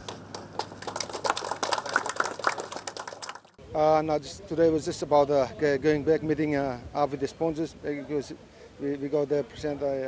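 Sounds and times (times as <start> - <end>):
small group clapping: 0.0 - 3.6.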